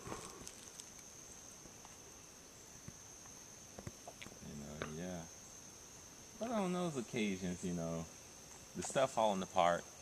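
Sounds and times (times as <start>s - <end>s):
insect drone: 0.0s - 10.0s.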